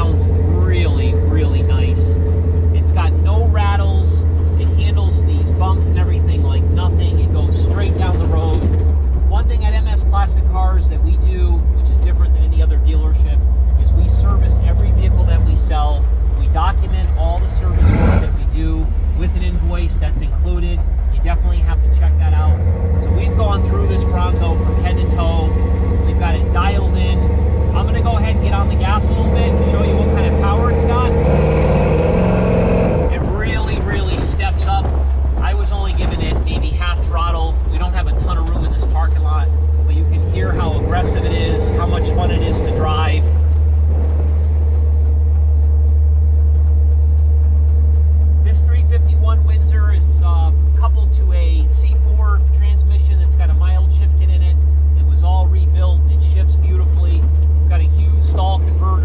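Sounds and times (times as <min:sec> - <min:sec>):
truck engine rumbling past: 0:00.0 - 0:59.0.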